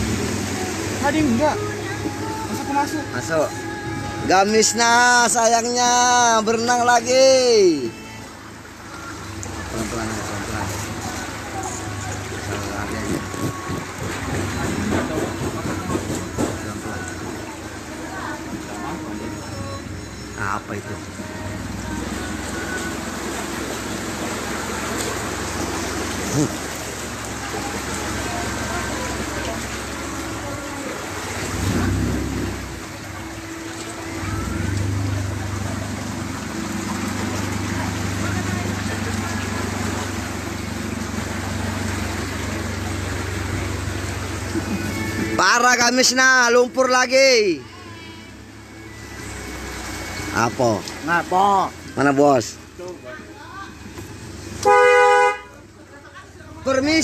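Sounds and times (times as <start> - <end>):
vehicle engine low hum: 0.0 - 4.3, 8.0 - 45.4, 47.7 - 56.8
water sloshing: 0.0 - 57.0
vehicle engine running: 20.4 - 45.5.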